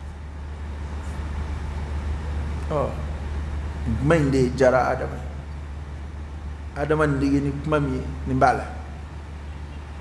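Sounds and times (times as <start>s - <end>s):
steady low hum: 0.0s - 10.0s
man talking: 2.7s - 3.2s, 3.8s - 5.4s, 6.8s - 8.9s.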